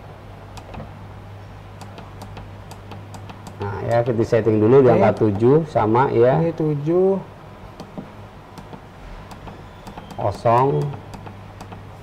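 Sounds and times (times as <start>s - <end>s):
low electrical hum: 0.0s - 12.0s
keypad buttons clicking: 1.8s - 4.1s, 7.8s - 11.9s.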